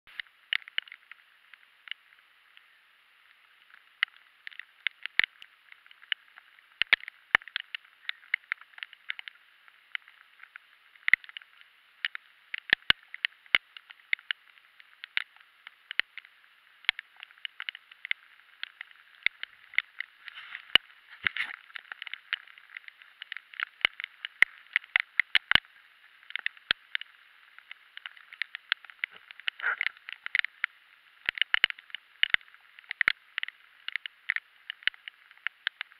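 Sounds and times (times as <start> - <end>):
heavy rain hiss: 0.1 - 35.9
raindrops tapping on camera housing: 0.1 - 35.9.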